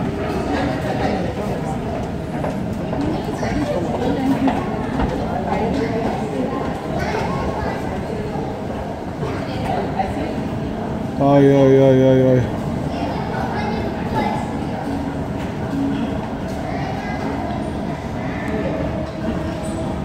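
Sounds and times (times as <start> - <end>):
steady background din: 0.0 - 20.0.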